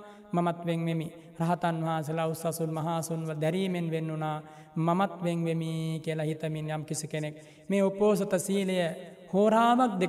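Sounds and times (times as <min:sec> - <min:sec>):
monk chanting in monotone: 0:00.0 - 0:10.0.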